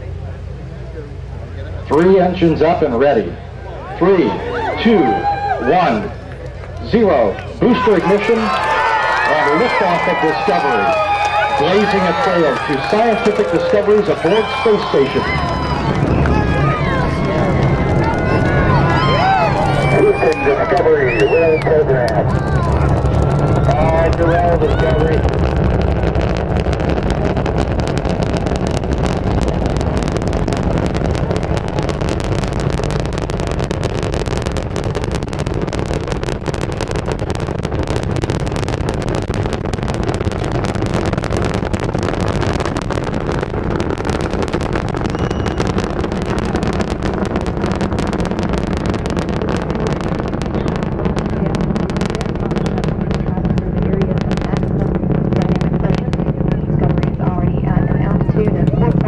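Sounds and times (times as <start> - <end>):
rocket engines deep rumble: 0.0 - 59.0.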